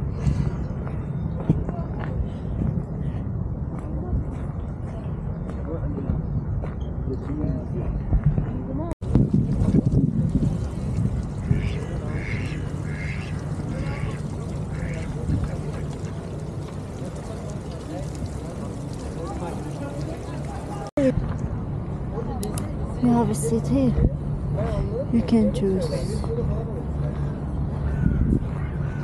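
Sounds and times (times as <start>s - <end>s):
duck quacking: 11.4s - 15.2s
murmur of voices: 11.4s - 21.2s.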